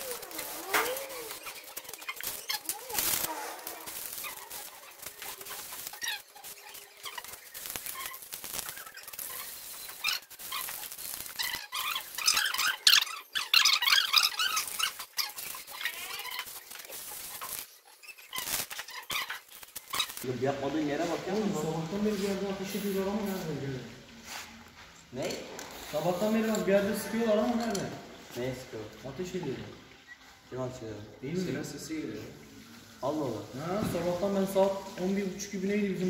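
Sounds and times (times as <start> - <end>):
sped-up voices chirping: 0.0 - 10.3
aerosol spray can hissing: 21.3 - 23.6.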